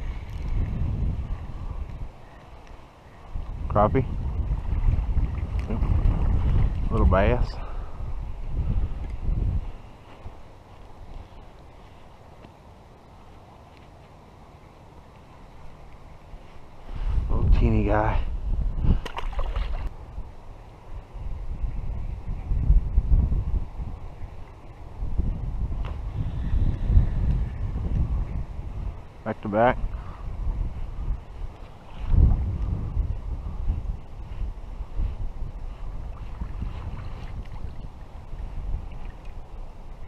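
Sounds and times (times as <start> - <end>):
wind buffeting microphone: 0.0 - 12.0, 15.5 - 40.0.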